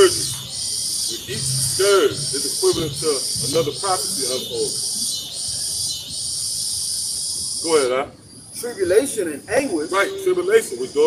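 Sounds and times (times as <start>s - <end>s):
insects buzzing high: 0.0s - 11.0s.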